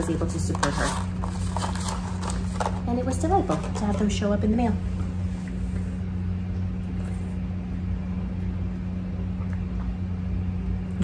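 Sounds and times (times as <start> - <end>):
baby monitor roar and hum: 0.0 - 11.0.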